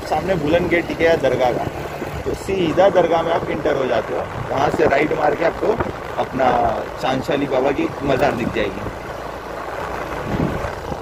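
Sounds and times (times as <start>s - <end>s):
man talking: 0.0s - 8.9s
motorbike engine running: 0.0s - 11.0s
road noise: 0.0s - 11.0s.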